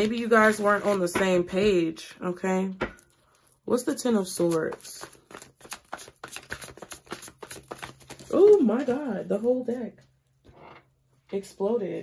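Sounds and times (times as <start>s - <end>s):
cards being shuffled: 0.0s - 1.2s, 4.3s - 9.6s.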